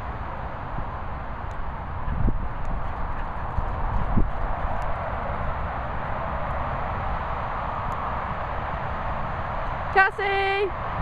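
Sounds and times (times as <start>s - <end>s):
low rumble on microphone: 0.0s - 10.0s.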